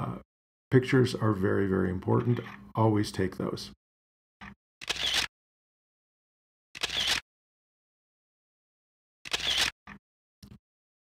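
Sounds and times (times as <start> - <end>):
camera shutter sound: 4.4 - 5.3, 6.8 - 7.2, 9.2 - 10.0.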